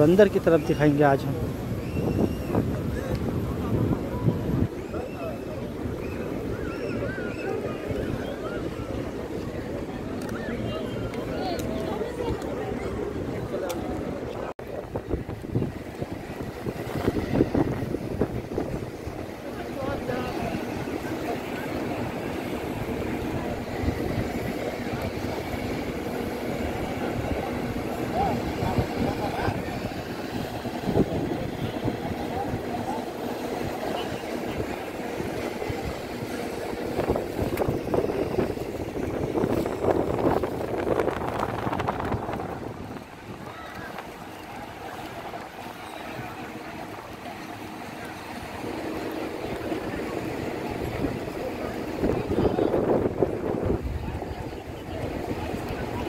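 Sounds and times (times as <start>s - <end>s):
faint voices: 0.0s - 56.0s
wind buffeting microphone: 0.0s - 56.0s.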